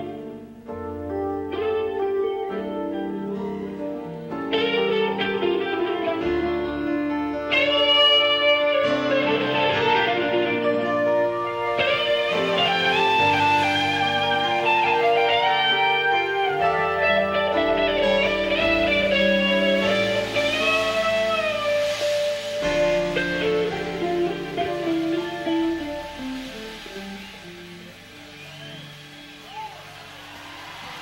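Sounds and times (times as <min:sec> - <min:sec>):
electric guitar bending lead notes: 0:00.0 - 0:29.5
live rock band: 0:00.0 - 0:31.0.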